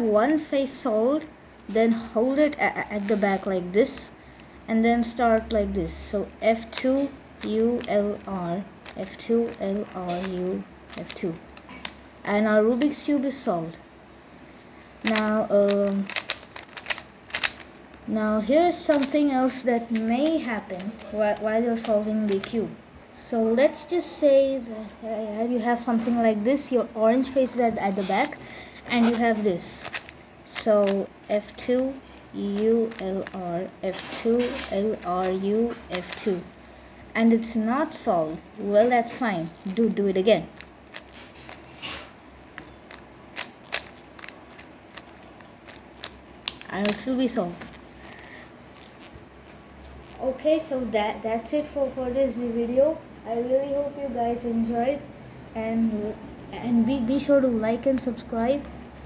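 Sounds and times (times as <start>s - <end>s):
puzzle cube layers clicking: 6.4s - 12.0s, 15.0s - 17.7s, 18.5s - 22.6s, 28.9s - 36.5s, 42.6s - 47.3s.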